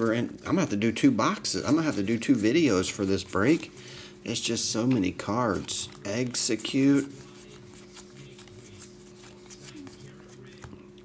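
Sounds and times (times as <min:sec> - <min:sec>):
trading cards rustling: 0:00.0 - 0:11.0.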